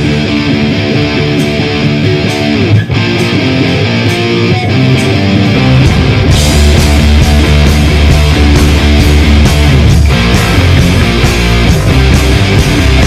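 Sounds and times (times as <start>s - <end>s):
electric guitar riff: 0.0s - 13.0s
drum and cymbal strokes: 5.7s - 13.0s.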